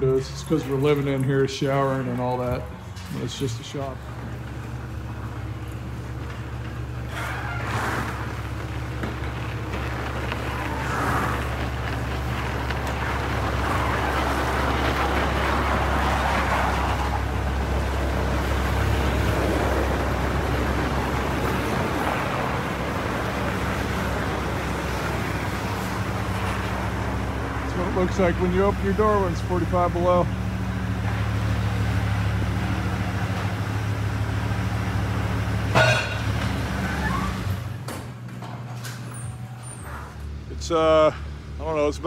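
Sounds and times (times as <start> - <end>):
low mechanical hum: 0.0 - 42.0.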